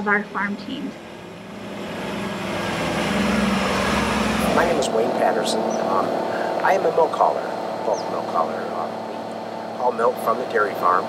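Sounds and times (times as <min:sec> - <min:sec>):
truck diesel engine drone: 0:00.0 - 0:11.0.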